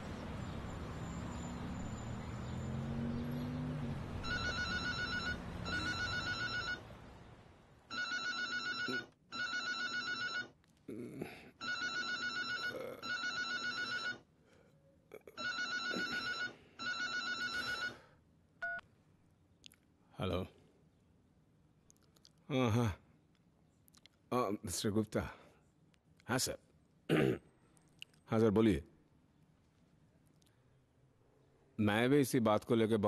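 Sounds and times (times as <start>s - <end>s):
telephone trilling double ring: 4.2s - 6.8s, 7.9s - 10.5s, 11.6s - 14.2s, 15.4s - 18.0s.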